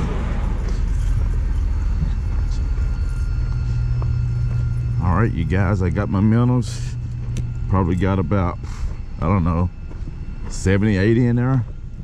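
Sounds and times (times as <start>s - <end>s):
faint high whines: 0.0s - 12.0s.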